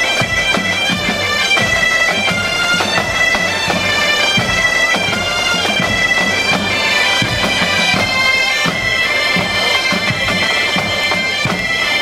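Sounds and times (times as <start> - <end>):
bagpipe music: 0.0 - 12.0
drum beating: 0.0 - 12.0.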